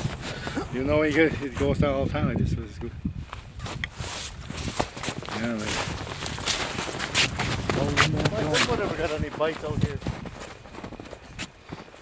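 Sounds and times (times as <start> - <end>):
footsteps crunching in snow: 0.0 - 1.8, 3.2 - 12.0.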